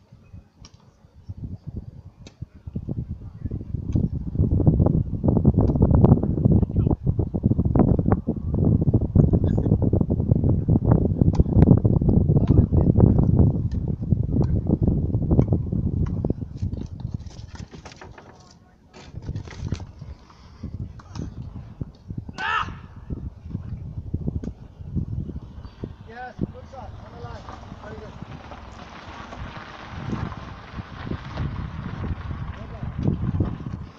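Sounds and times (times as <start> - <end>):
wind rumbling on microphone: 0.0 - 33.9
person shouting: 22.3 - 23.0.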